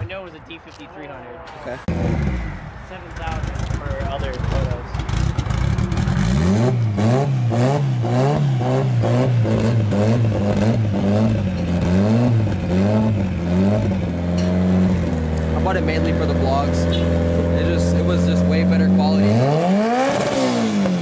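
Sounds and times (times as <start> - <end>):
car engine revving: 1.5 - 21.0.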